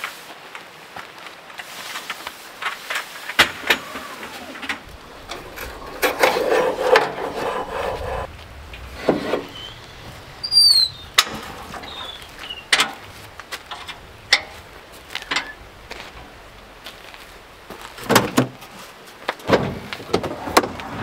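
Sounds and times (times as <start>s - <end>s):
scraping squeal: 3.8s - 8.3s, 8.9s - 13.2s.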